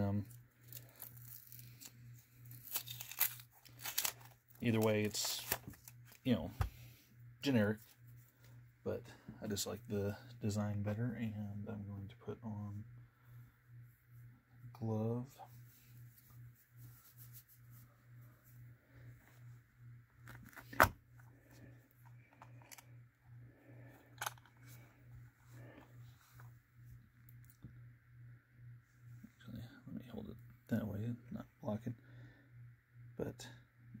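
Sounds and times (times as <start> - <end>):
low pulsing hum: 0.0 - 34.0
wrapping paper tearing and crinkling: 0.6 - 6.2
cotton glove rustling: 15.5 - 19.5.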